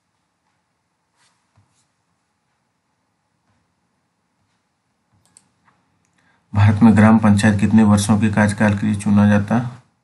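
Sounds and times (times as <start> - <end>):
soft rustles: 0.0 - 2.8.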